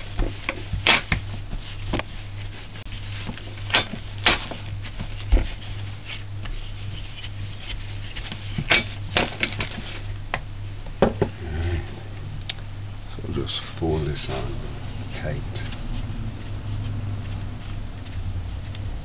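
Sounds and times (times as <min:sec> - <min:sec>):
rolling pin rolling dough: 0:00.0 - 0:10.2
low hum: 0:01.6 - 0:19.0.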